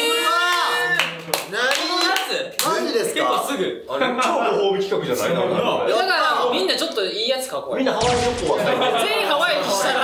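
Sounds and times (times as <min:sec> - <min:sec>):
group exclaiming: 0:00.0 - 0:01.0.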